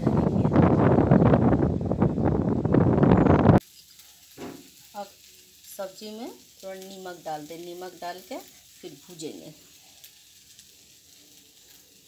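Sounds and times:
rain and wind rushing: 0:00.0 - 0:03.6.

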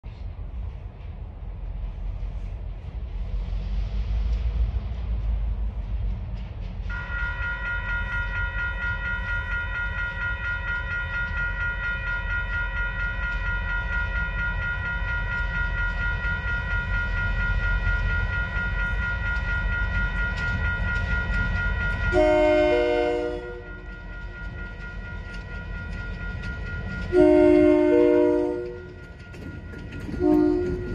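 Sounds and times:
railroad crossing warning bells: 0:01.7 - 0:30.9.

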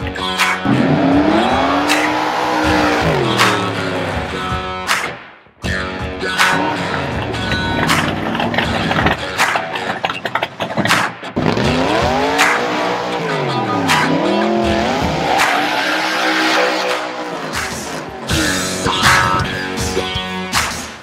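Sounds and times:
car engine revving: 0:00.0 - 0:05.0, 0:06.3 - 0:19.8
rock music: 0:00.0 - 0:21.0
tires squealing: 0:00.3 - 0:04.4, 0:06.4 - 0:19.4.

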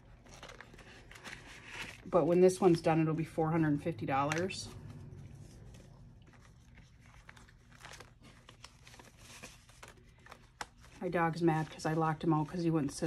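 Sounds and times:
paper banknotes rustling: 0:00.0 - 0:03.5, 0:04.2 - 0:13.0.

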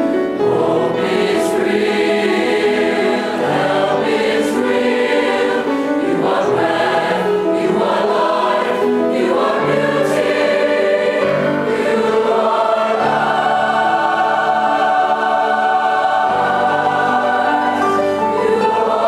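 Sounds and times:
mixed choir singing: 0:00.3 - 0:19.0.

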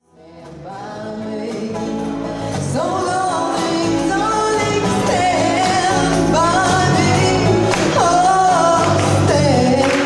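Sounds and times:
guitar accompaniment: 0:00.0 - 0:10.0
woman singing into microphone: 0:00.0 - 0:10.0.

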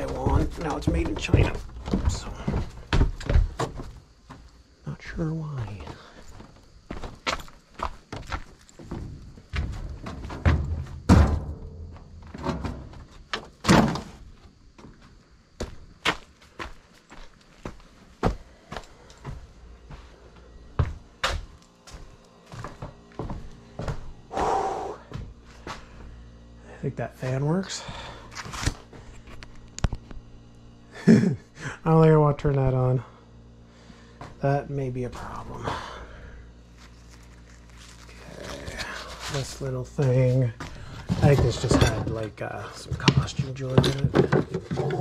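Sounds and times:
junk thudding into metal bin: 0:09.8 - 0:14.2, 0:41.0 - 0:45.0.

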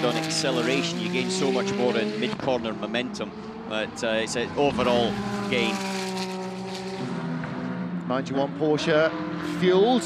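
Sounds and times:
race car engine: 0:00.0 - 0:10.0.

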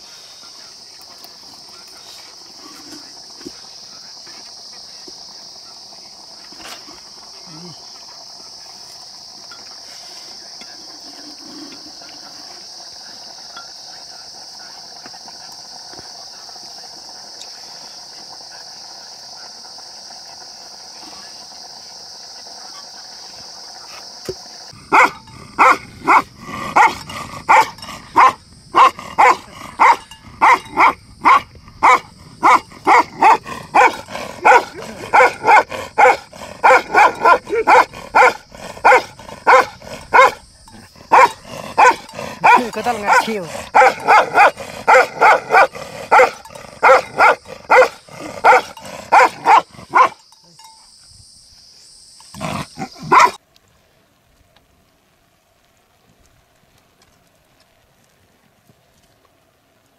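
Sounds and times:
faint hiss: 0:00.0 - 0:59.9
dog barking: 0:24.9 - 0:40.4, 0:41.0 - 0:50.2, 0:52.8 - 0:53.4.

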